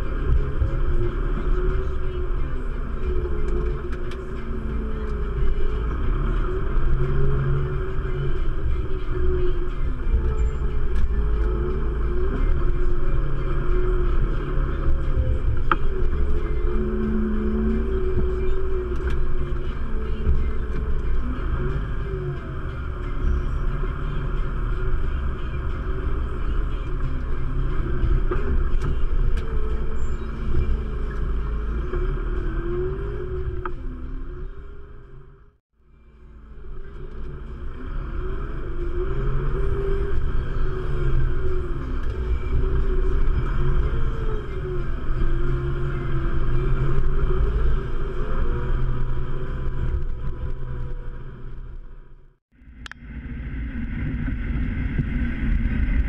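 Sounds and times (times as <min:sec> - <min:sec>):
tractor diesel engine rumble: 0:00.0 - 0:56.0.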